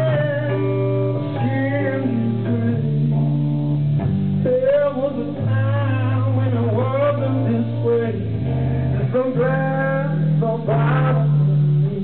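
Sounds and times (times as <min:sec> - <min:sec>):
man singing: 0:00.0 - 0:03.5, 0:04.4 - 0:12.0
bass notes: 0:00.0 - 0:12.0
guitar: 0:00.0 - 0:12.0.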